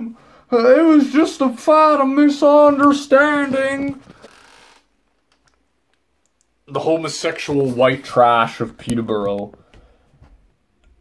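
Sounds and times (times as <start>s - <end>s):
faint rustling: 2.6s - 4.9s.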